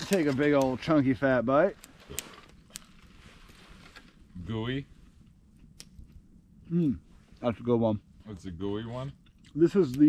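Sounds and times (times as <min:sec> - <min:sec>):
campfire burning: 0:00.0 - 0:10.0
faint low hiss: 0:00.0 - 0:10.0
fire popping: 0:00.0 - 0:10.0.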